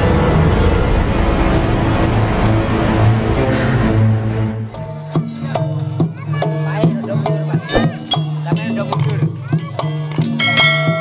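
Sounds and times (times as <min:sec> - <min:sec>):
drum strokes: 0:07.7 - 0:08.2.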